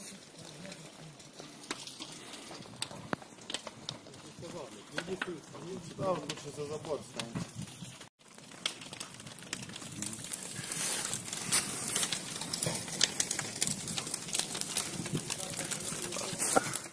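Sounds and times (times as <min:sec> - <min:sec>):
burning house crackling: 0:00.0 - 0:16.9
steady fire hiss: 0:00.0 - 0:16.9.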